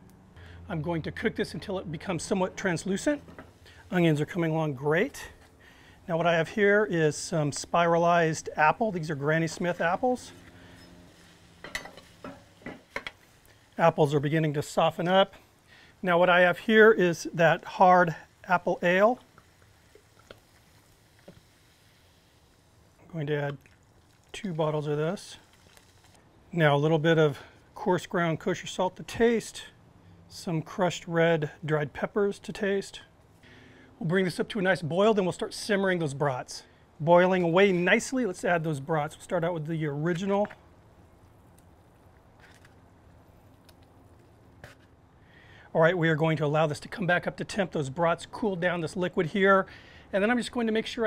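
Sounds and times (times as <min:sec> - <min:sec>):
liquid pouring into hot pan: 0:16.4 - 0:26.2.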